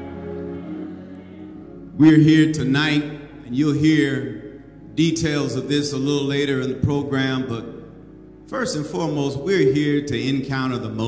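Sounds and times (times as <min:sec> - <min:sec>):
soft instrumental music: 0:00.0 - 0:11.0.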